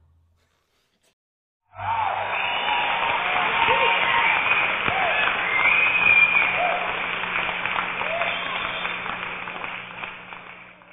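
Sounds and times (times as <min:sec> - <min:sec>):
audience applauding: 0:01.7 - 0:10.9.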